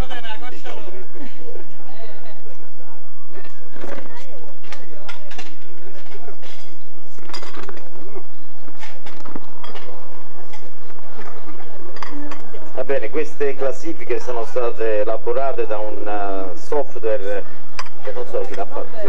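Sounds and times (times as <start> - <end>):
murmured talk: 0.0 - 9.0, 9.9 - 19.0
tableware clinking: 5.0 - 7.8, 8.8 - 10.7, 11.9 - 12.7, 17.8 - 18.1.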